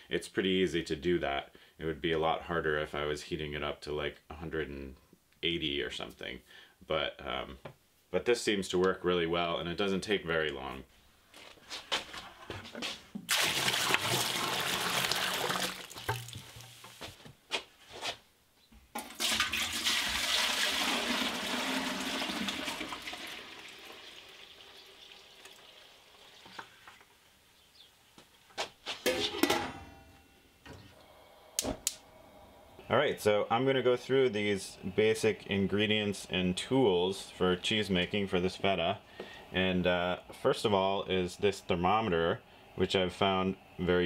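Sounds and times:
milk pouring into steel pot: 13.3 - 16.7, 19.0 - 26.5.

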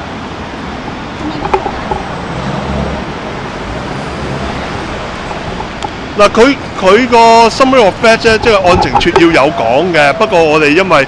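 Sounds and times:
vehicle engine hum: 0.0 - 10.4
street traffic noise: 0.0 - 11.0.

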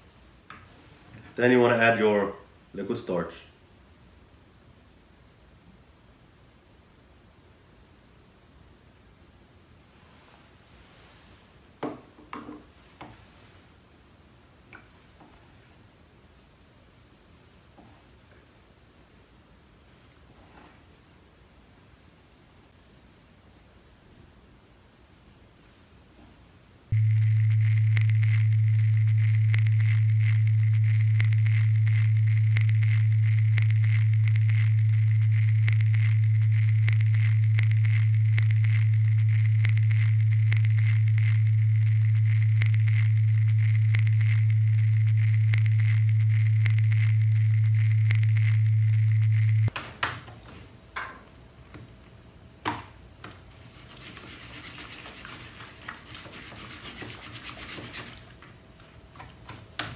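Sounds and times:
loud electronic hum: 26.9 - 49.7
fast regular ticking: 27.0 - 49.7.

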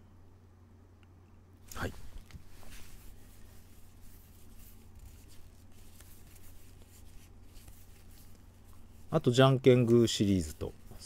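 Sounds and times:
steady low hum: 0.0 - 11.0
trading cards rustling and scraping: 2.2 - 11.0.

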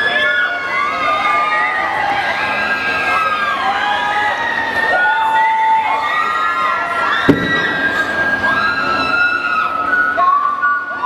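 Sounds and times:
audience screaming and cheering: 0.0 - 11.0
sharp knock: 7.3 - 8.0.

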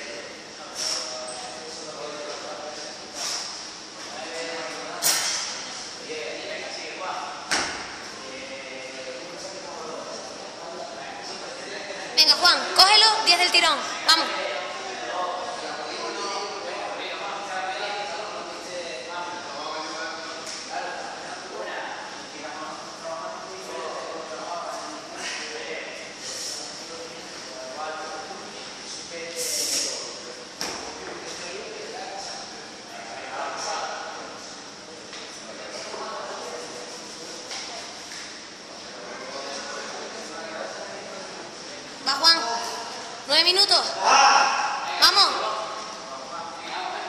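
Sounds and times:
indistinct voices in echoing hall: 0.0 - 47.0.

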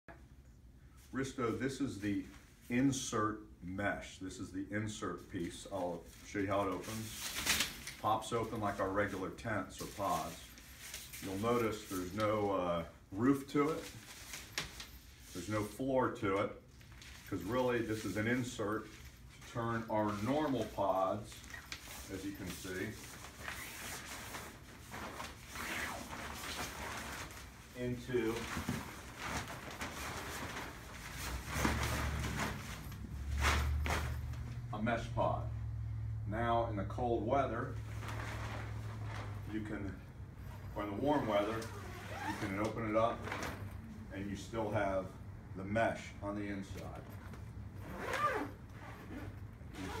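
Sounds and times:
tent fabric rustling and rubbing: 6.0 - 12.2, 16.8 - 34.6, 37.8 - 39.9, 40.5 - 43.7, 47.8 - 50.0.

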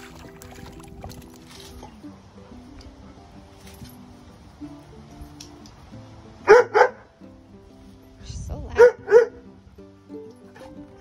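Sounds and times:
background music: 0.0 - 11.0
dog barking: 6.4 - 7.1, 8.8 - 9.4.

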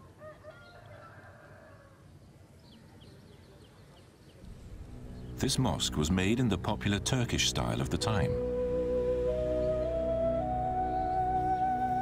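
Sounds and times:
faint countryside ambience: 0.0 - 8.6.

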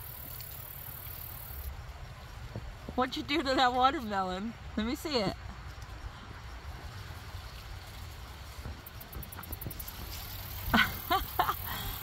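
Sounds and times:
low outdoor rumble: 0.0 - 12.0
person laughing: 10.7 - 12.0.

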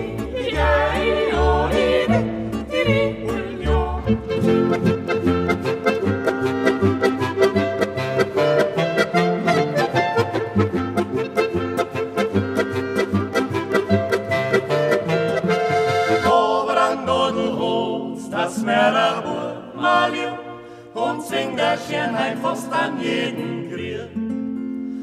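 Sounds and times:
men singing: 0.0 - 4.4, 16.2 - 24.2
button accordion: 0.1 - 16.6.

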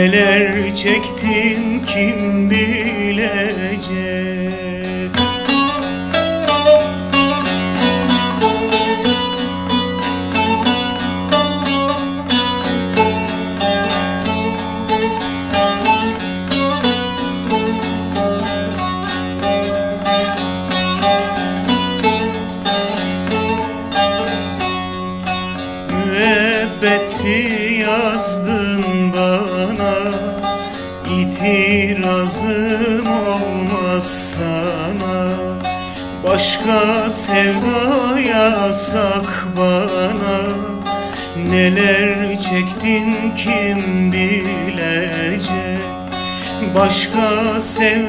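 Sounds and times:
plucked string instrument melody: 0.0 - 48.0.

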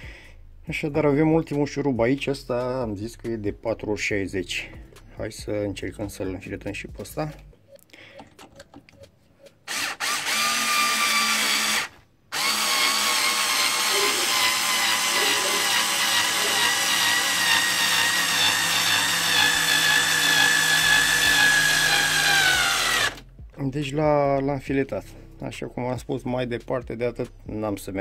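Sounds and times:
cordless screwdriver motor whine: 9.7 - 23.2.

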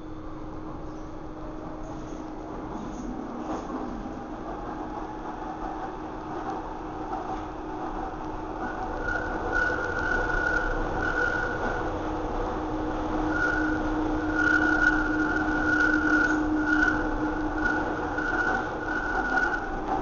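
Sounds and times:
low hum: 0.0 - 20.0
train running from inside carriage: 0.0 - 20.0
high tone: 8.6 - 11.9, 13.2 - 20.0.

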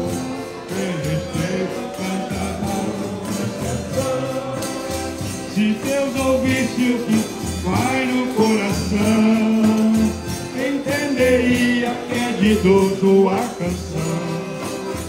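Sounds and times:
person singing: 0.0 - 15.0
piano accordion playing a tune: 0.0 - 15.0.

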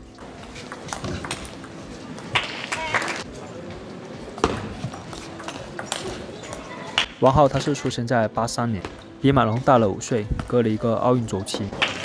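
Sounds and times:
faint voices: 0.0 - 8.0.

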